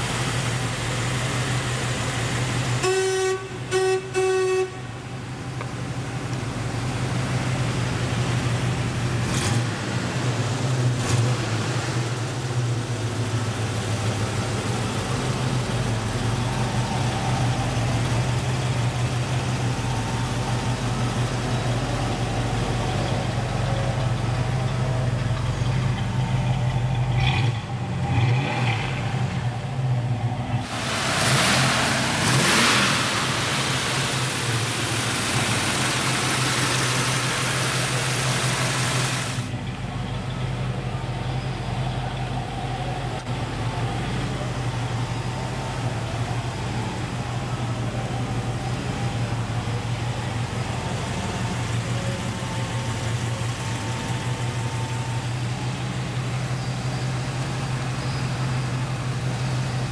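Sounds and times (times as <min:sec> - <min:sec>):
car engine idling and revving: 0:00.0 - 0:59.9.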